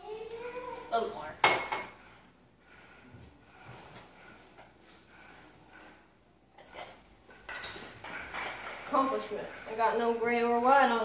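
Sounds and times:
rustling clatter: 0.7s - 11.0s.

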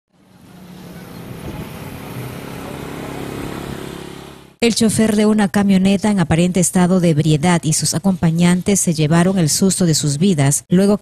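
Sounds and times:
road traffic: 0.1s - 4.6s
motorcycle engine passing: 0.2s - 4.6s.

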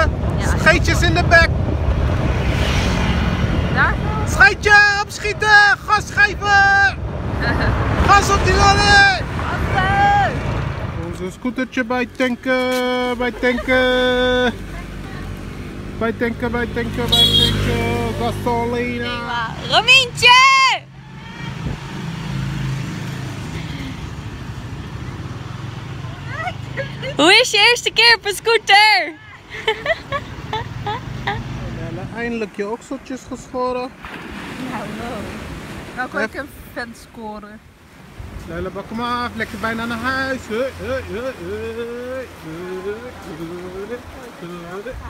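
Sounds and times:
wind noise on microphone: 0.0s - 4.3s, 21.5s - 22.0s
wind: 0.0s - 45.0s
scooter engine humming: 12.0s - 32.2s.

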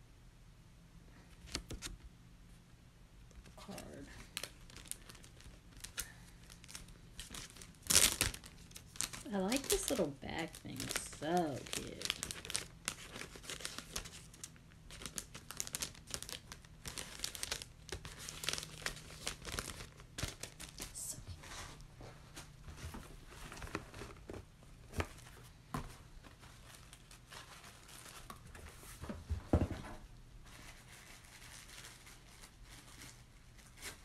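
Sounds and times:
plastic bag crinkling and rustling: 3.3s - 29.1s, 30.4s - 34.0s.

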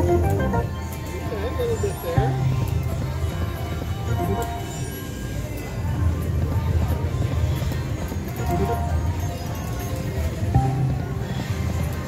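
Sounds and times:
slot machine reels spinning: 0.0s - 2.7s, 3.9s - 5.5s, 8.4s - 10.6s
slot machine electronic music: 0.0s - 5.8s, 7.9s - 11.8s.

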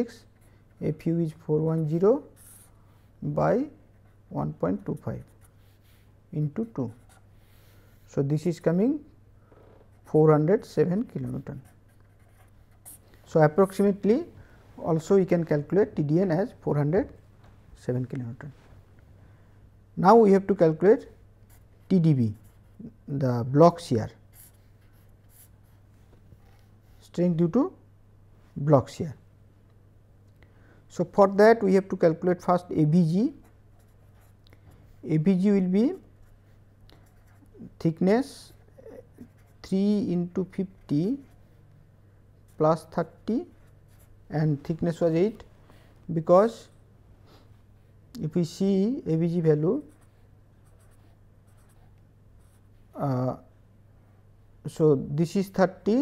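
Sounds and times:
pen scratching on paper: 1.8s - 2.7s, 6.9s - 7.3s, 11.0s - 14.0s, 35.9s - 37.6s, 38.2s - 39.7s, 49.8s - 52.7s.

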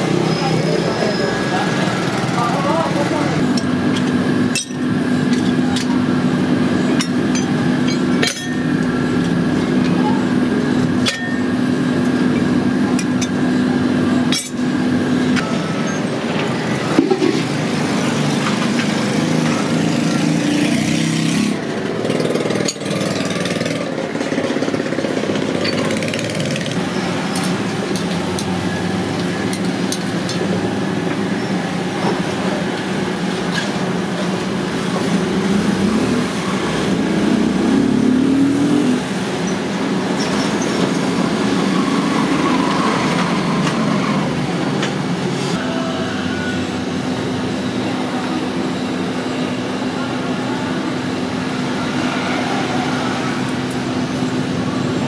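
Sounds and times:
furnace blower and burner drone: 0.0s - 55.0s.

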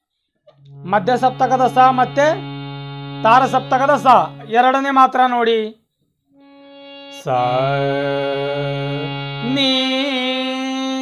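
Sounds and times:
harmonium held note: 0.6s - 5.2s, 6.4s - 11.0s.

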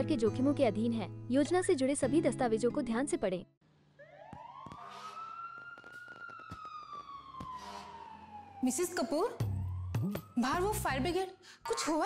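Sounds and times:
siren-like gliding tone: 4.0s - 10.9s.

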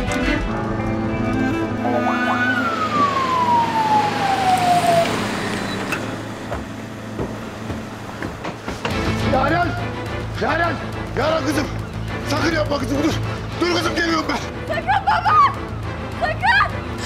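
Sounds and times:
dramatic background music: 0.0s - 17.0s
falling whine: 1.2s - 7.4s.

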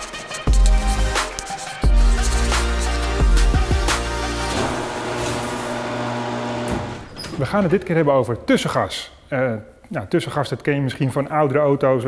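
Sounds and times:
roller door motor humming: 4.2s - 7.8s
garage door clunk: 4.5s - 8.0s.

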